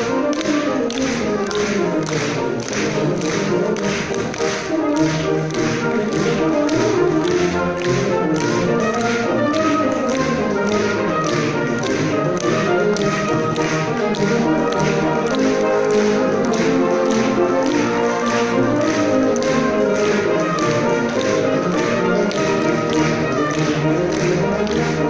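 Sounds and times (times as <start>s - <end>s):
brass band playing: 0.0s - 25.0s
quick tapping percussion beat: 0.0s - 25.0s.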